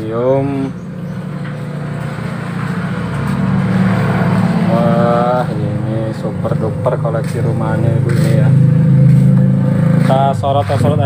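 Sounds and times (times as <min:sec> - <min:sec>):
vehicle engine humming: 0:00.0 - 0:11.0.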